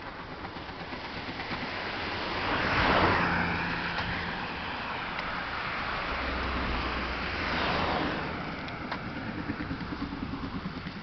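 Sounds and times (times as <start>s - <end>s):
car passing close by: 1.2s - 11.0s.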